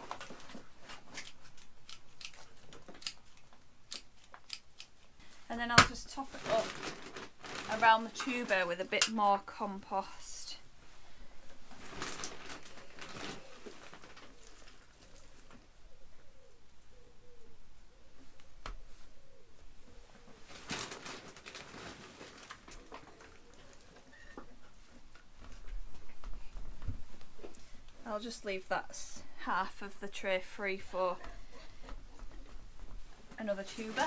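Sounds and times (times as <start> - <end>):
hands rustling in compost: 32.6 - 34.0.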